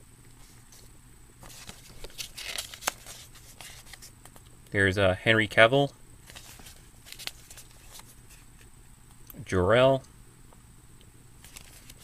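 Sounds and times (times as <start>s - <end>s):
paper crinkling: 0.4s - 4.4s, 6.2s - 8.7s, 11.4s - 12.0s
paper pages turning: 0.4s - 4.4s, 6.2s - 8.7s, 11.4s - 12.0s.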